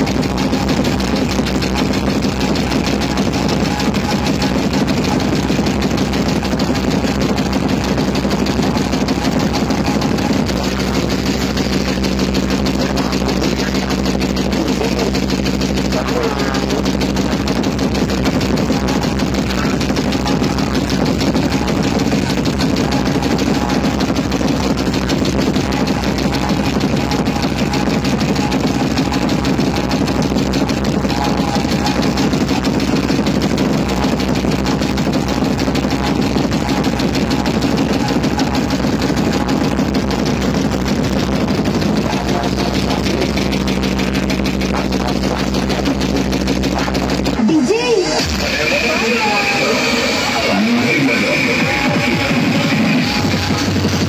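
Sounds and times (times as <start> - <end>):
bass-heavy music on loud sound system: 0.0 - 54.0.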